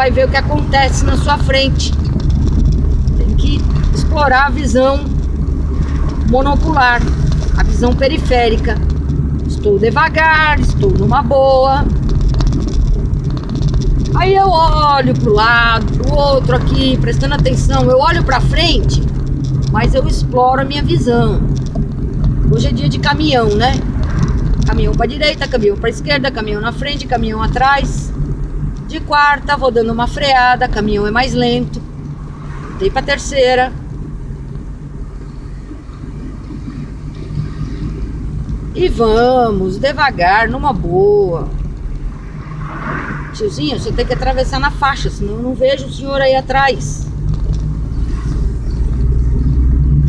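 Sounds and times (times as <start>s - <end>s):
car engine and road rumble: 0.0s - 50.0s.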